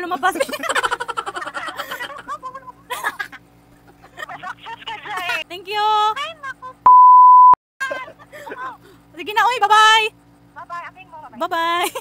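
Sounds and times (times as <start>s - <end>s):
laughter: 0.1s - 5.4s, 11.8s - 12.0s
censor bleep tone: 6.9s - 7.6s.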